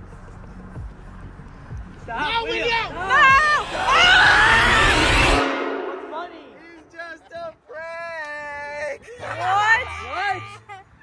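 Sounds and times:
noisy rush with deep rumble: 2.8s - 7.0s.

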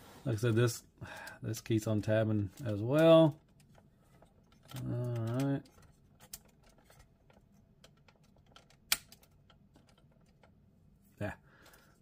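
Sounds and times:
plastic toy parts clicking: 1.2s - 10.6s.

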